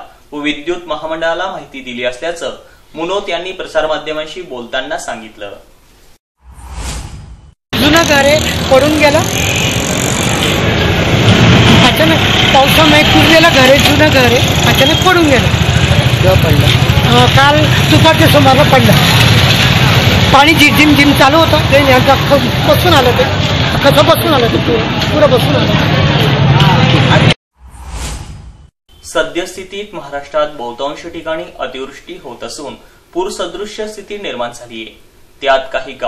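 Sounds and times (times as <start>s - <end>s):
street traffic noise: 7.8s - 27.4s
vehicle engines rumbling: 7.8s - 27.4s.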